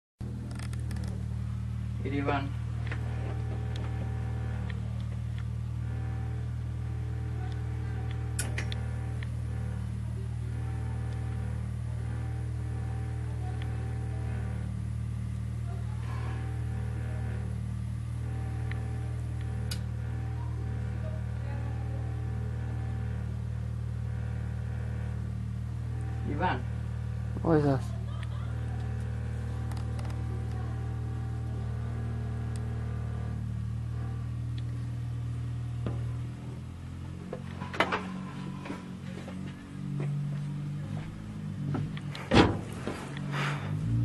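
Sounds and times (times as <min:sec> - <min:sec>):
steady low hum: 0:00.2 - 0:44.0
vehicle engine idling: 0:00.2 - 0:44.0.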